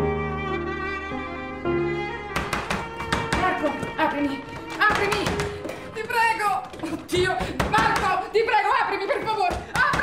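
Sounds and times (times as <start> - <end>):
film score strings: 0.0 - 9.7
music with quick sharp taps: 2.3 - 6.3.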